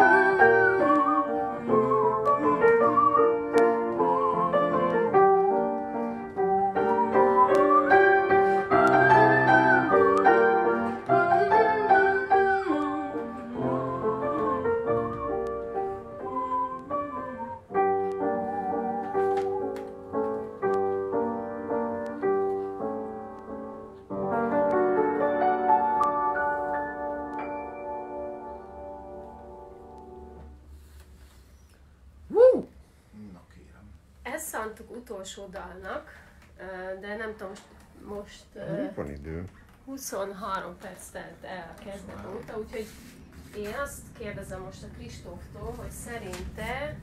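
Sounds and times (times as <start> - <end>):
grand piano accompaniment: 0.0 - 30.6.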